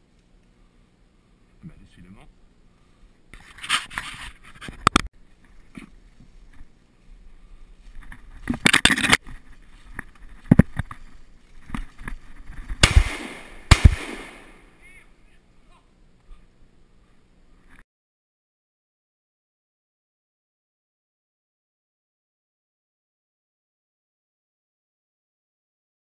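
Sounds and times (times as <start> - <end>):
shotgun shots: 12.8 - 14.8.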